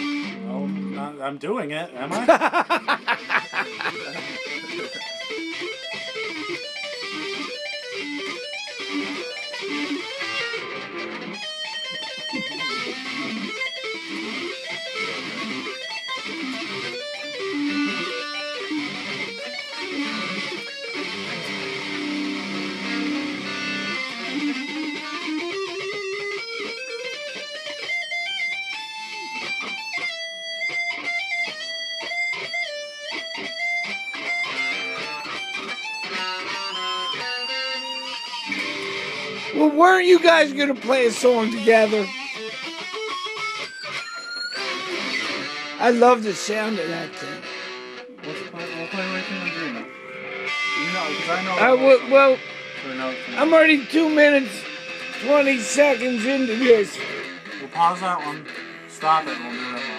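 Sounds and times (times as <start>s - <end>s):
electric guitar metal lead: 0.0s - 1.0s, 2.1s - 39.6s, 40.2s - 59.9s.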